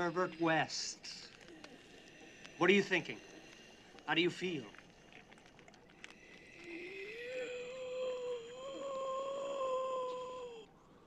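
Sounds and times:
eerie wail: 6.2s - 11.0s.

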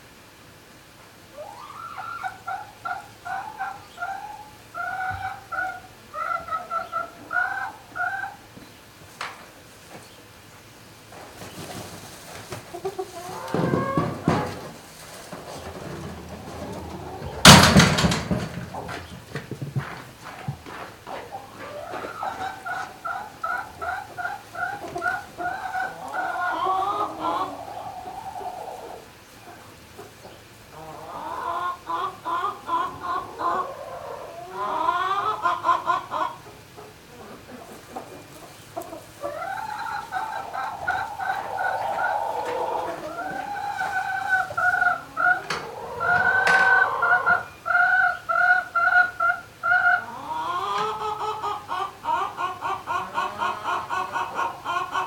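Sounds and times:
poultry clucking: 0.4s - 55.0s.

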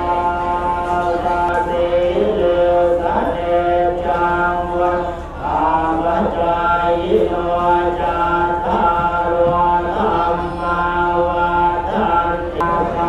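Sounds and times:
monks chanting together: 0.0s - 13.0s
voice leading into a microphone: 0.0s - 13.0s.

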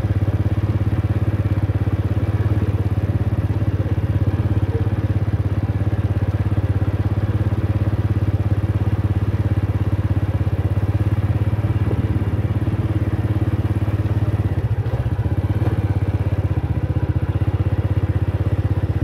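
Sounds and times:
small motorcycle engine running: 0.0s - 19.0s.

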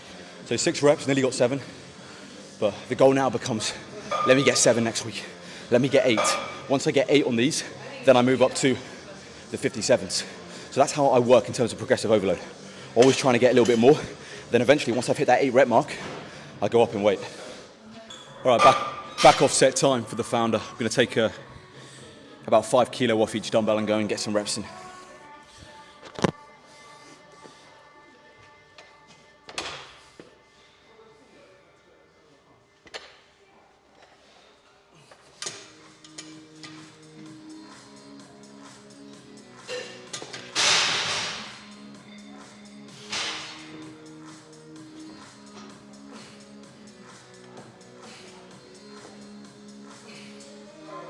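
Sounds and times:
background music: 0.0s - 33.2s, 34.9s - 51.0s.

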